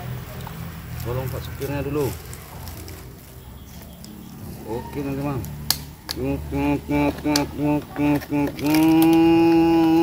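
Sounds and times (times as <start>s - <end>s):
person speaking: 4.4s - 5.6s.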